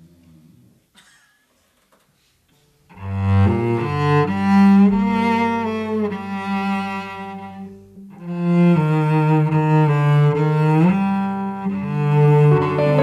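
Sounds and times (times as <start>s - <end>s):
cello bowed notes: 2.9s - 13.0s
sustained keyboard notes: 12.5s - 13.0s.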